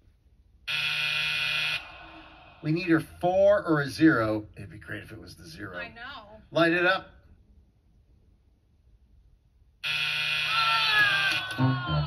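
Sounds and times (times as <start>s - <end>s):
game show buzzer: 0.7s - 1.9s, 9.8s - 10.9s.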